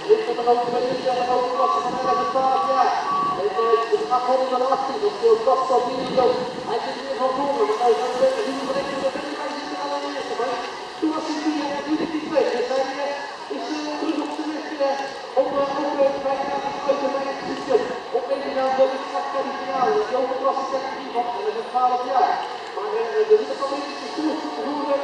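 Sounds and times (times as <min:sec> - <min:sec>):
announcer over loudspeaker: 0:00.0 - 0:25.0.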